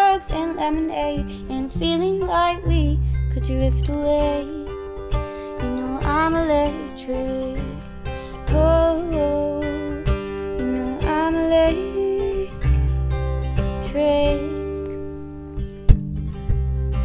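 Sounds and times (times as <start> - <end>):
young woman singing: 0.0 - 13.0, 13.6 - 15.1
acoustic guitar strumming: 0.0 - 17.0.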